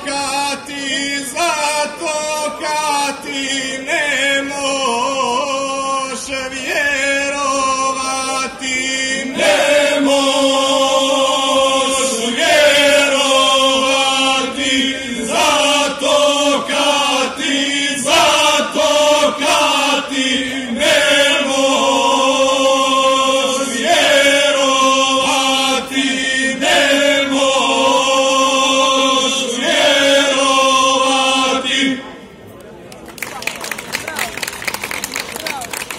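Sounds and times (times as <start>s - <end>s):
male group singing a cappella: 0.0s - 32.0s.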